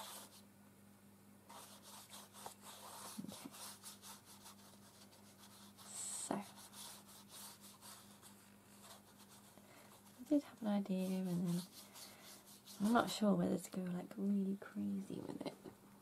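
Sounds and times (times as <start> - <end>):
paintbrush swishing on paper: 0.0 - 0.4, 1.5 - 13.2
low steady hum: 0.0 - 16.0.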